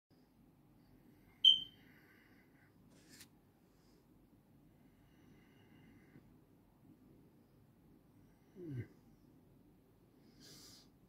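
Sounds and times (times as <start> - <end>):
faint low hum: 0.1 - 11.0
high-pitched electronic beep: 1.4 - 1.7.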